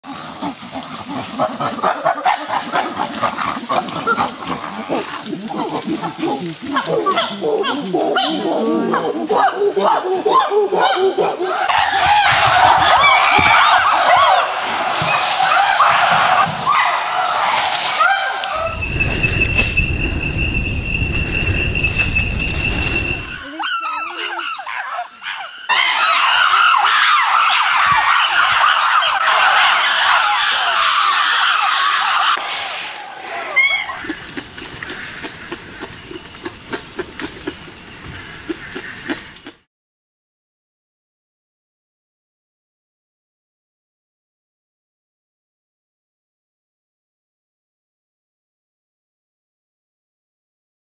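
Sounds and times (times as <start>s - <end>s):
chimpanzees calling: 0.1s - 32.4s, 33.4s - 39.7s
low rumble: 18.6s - 23.4s.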